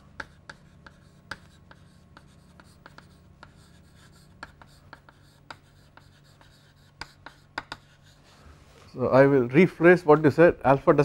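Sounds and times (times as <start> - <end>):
chalk tapping and scratching: 0.0 - 8.5.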